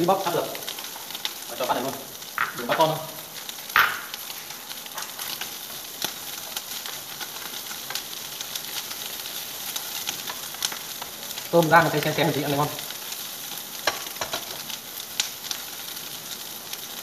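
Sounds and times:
shrimp sizzling in a pan: 0.0s - 17.0s
bowl knocking on counter: 2.4s - 2.9s, 3.8s - 4.1s
spatula tapping and scraping: 3.8s - 4.1s, 13.8s - 14.6s.

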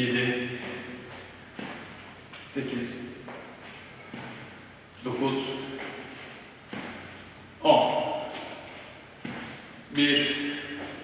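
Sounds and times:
shoe thud on gym floor: 0.6s - 2.2s, 3.2s - 4.6s, 5.6s - 7.3s, 8.2s - 9.8s, 10.5s - 11.0s.

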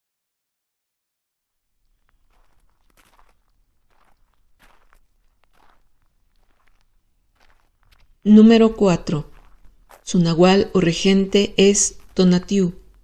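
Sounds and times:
soft rustles and clicks: 1.9s - 8.3s.

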